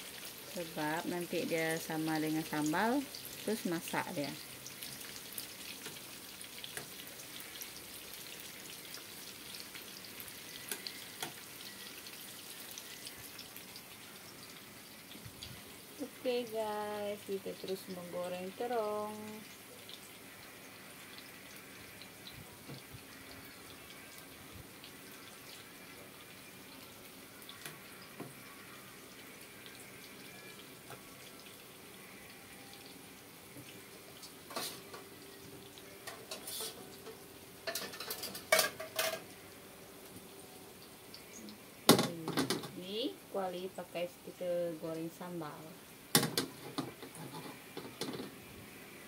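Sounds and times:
eggplant sizzling in frying pan: 0.0 - 49.0
metal wok clattering: 36.1 - 39.3
cookware clicks and knocks: 37.6 - 39.2.

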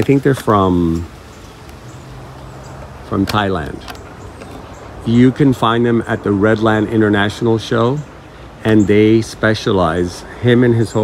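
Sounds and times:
even hiss: 0.0 - 11.0.

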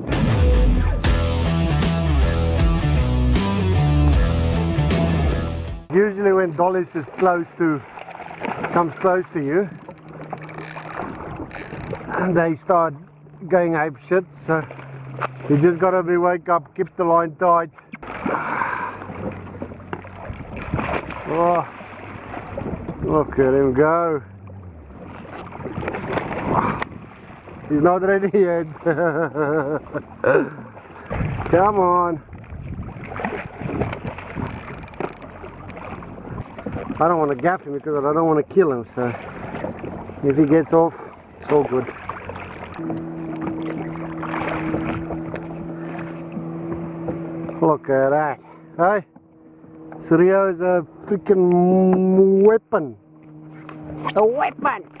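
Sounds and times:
water noise: 0.0 - 55.0
jet ski engine idling: 1.0 - 16.5, 17.2 - 32.4, 33.1 - 55.0
fish thrashing and splashing: 6.4 - 12.3, 14.4 - 16.0, 17.8 - 23.0, 24.4 - 37.6, 38.9 - 47.6
wind buffeting microphone: 19.0 - 23.6, 24.8 - 27.8, 31.0 - 37.0, 42.8 - 47.6.

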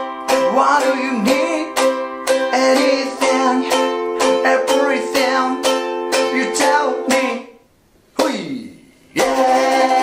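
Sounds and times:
ukulele strumming: 0.0 - 10.0.

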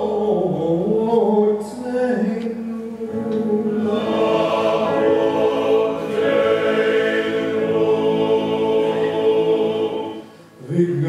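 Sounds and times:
male choir singing: 0.0 - 11.0.

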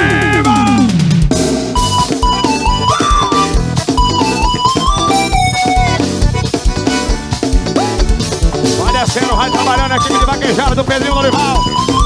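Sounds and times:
instrumental band melody: 0.0 - 12.0
kick drum beat and percussion: 0.0 - 12.0.

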